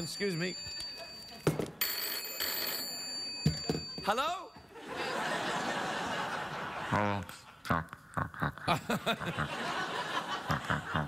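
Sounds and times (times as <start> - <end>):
telephone bell ringing: 0.0 - 5.8.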